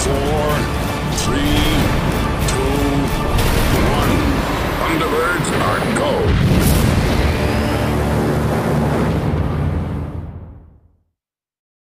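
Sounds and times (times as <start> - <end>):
rumbling sound effects: 0.0 - 10.9.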